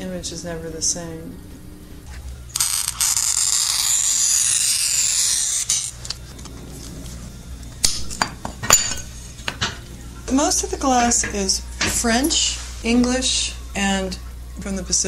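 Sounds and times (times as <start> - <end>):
glass cutter scoring glass: 2.6 - 6.2
glass pieces clinking: 8.2 - 9.1.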